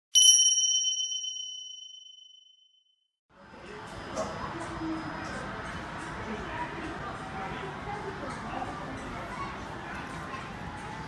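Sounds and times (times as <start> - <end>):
high bell-like ding: 0.1 - 2.8.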